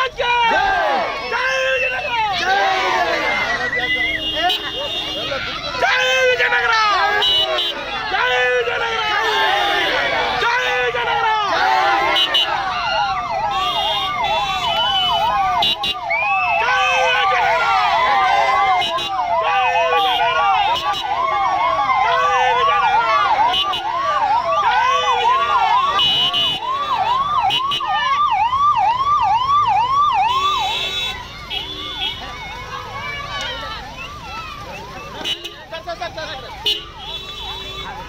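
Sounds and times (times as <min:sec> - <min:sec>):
crowd voices: 0:00.0 - 0:38.0
electronic siren yelping: 0:11.7 - 0:30.9.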